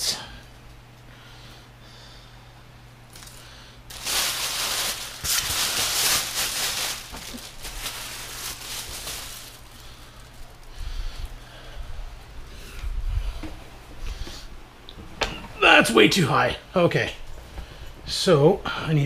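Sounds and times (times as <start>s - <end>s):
rustling and handling noise: 3.1s - 15.2s.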